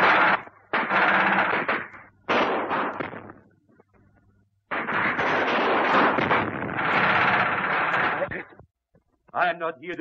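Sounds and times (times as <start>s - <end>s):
gunshots: 0.0s - 3.5s, 4.7s - 8.5s
machine-gun fire: 0.0s - 3.5s, 4.7s - 8.5s.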